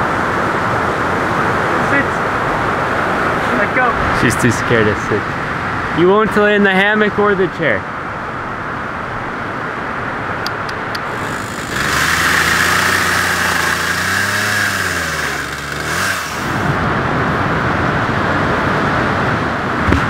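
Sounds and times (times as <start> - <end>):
steady rushing noise: 0.0 - 20.0
engine running: 10.5 - 17.6.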